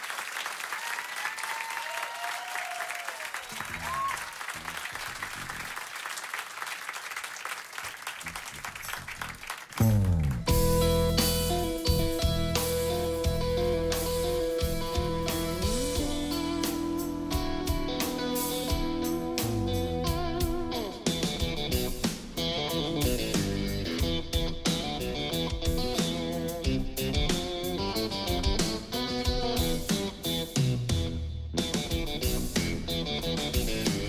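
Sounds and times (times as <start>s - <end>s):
electric guitar bending notes: 9.8s - 34.0s
rock band playing: 9.8s - 34.0s
drums and cymbals: 10.5s - 34.0s.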